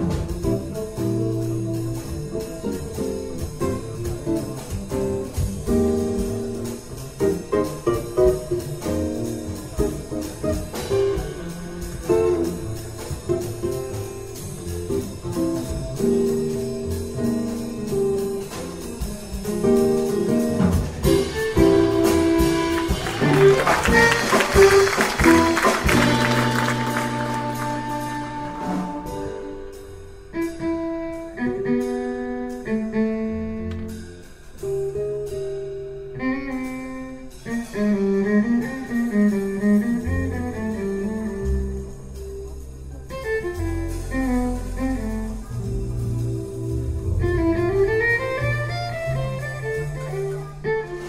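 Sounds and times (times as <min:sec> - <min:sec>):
jazz band playing: 0:00.0 - 0:51.0
plucked double bass: 0:00.0 - 0:51.0.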